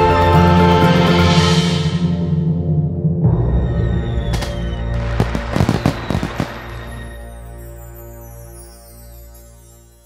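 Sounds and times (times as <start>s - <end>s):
music: 0.0s - 10.0s
firework bang: 4.3s - 7.0s
firework crackling pops: 4.3s - 7.1s.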